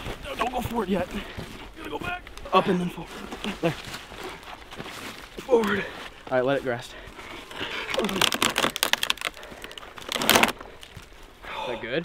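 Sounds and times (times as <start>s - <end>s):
footsteps in dry leaves: 0.0s - 11.3s
rotten log crackling: 0.0s - 11.8s.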